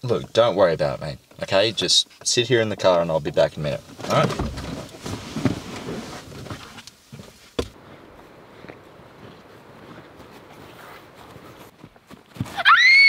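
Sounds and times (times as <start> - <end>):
faint background hiss: 0.0 - 12.1
rustling movement: 1.2 - 12.6
car door shutting: 4.0 - 6.7.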